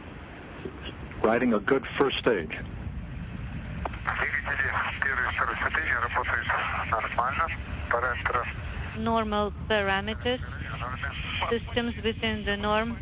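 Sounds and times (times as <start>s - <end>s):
steady low rumble: 0.0s - 13.0s
radio voice: 4.0s - 13.0s.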